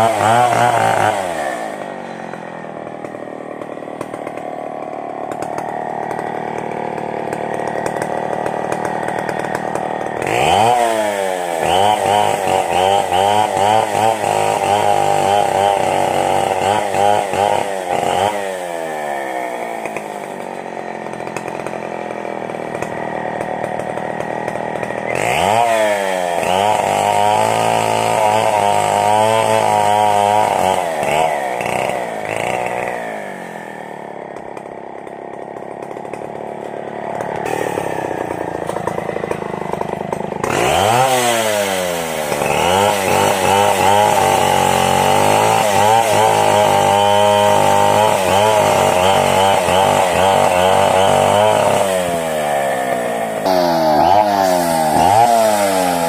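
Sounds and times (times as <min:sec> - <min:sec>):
chainsaw cutting wood: 0:00.0 - 0:56.0.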